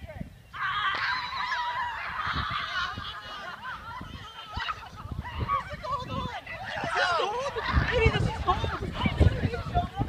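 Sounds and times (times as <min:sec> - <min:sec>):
children shrieking and shouting: 0:00.5 - 0:10.0.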